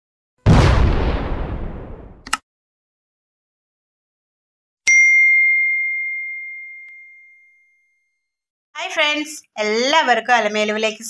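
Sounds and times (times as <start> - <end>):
bell ding: 4.9 - 8.3.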